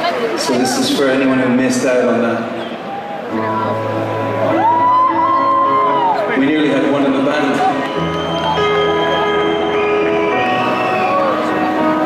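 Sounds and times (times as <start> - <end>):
live band sustained chords: 1.3 - 12.0.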